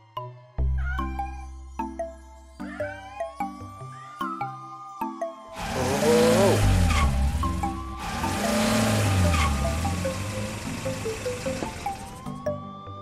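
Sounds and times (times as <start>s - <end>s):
light background music: 0.0s - 13.0s
cartoon engine revving: 5.6s - 12.2s
tires squealing: 5.6s - 12.2s.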